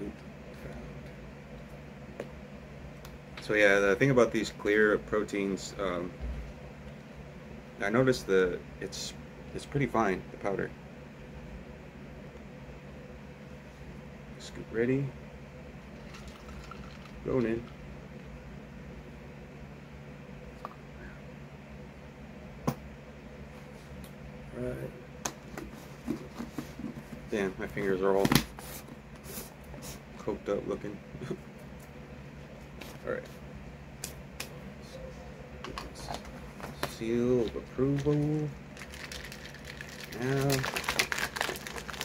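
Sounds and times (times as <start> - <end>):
low room hum: 0.0 - 42.0.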